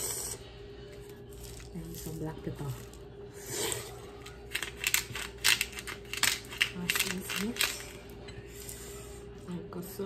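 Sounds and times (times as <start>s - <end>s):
pepper grinder grinding: 1.2s - 8.9s.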